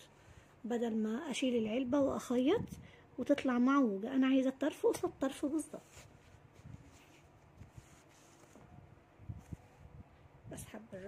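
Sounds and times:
soft bumps of hands handling yarn: 5.4 - 10.1.

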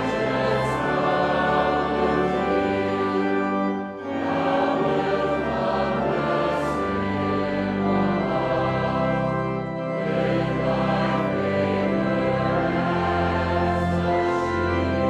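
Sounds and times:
congregation singing a hymn: 0.0 - 15.0
organ accompaniment: 0.0 - 15.0.

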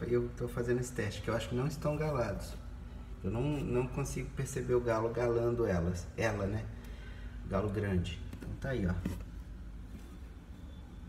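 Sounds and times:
incubator fan humming: 0.0 - 11.0.

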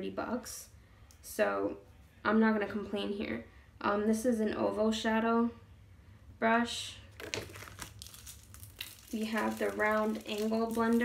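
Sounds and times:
packaging crinkling: 7.1 - 11.0.

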